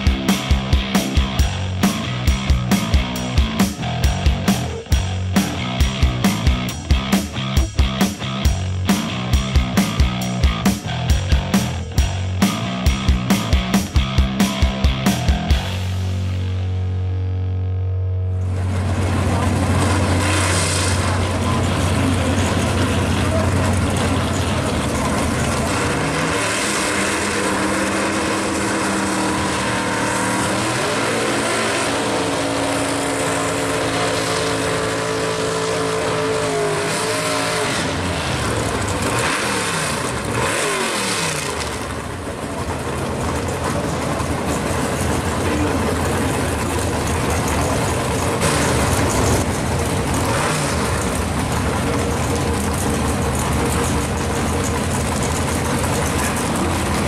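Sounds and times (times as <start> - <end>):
car engine revving: 0.0 - 57.0
tyres spinning: 18.9 - 31.4, 34.6 - 57.0.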